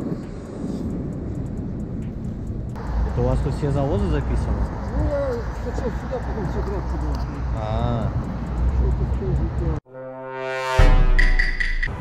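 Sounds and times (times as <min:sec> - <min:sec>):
muffled train rumble: 0:00.0 - 0:09.8
street background noise: 0:00.0 - 0:09.8.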